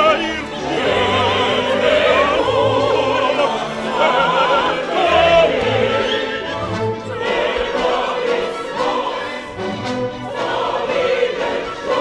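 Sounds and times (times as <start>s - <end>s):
opera chorus singing: 0.0s - 12.0s
orchestra playing: 0.0s - 12.0s.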